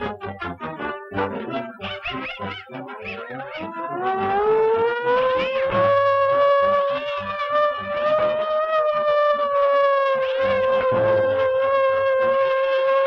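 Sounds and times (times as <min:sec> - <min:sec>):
busy orchestral music: 0:00.0 - 0:04.3
rising siren-like tone: 0:00.6 - 0:13.0.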